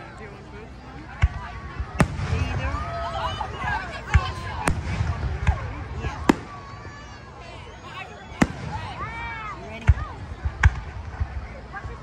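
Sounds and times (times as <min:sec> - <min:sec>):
crowd talking: 0:00.0 - 0:12.0
fireworks bursting: 0:01.2 - 0:03.4, 0:04.0 - 0:06.8, 0:08.3 - 0:11.5.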